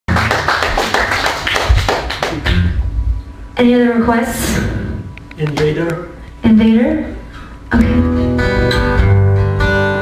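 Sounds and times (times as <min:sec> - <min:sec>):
audience clapping: 0:00.1 - 0:02.7.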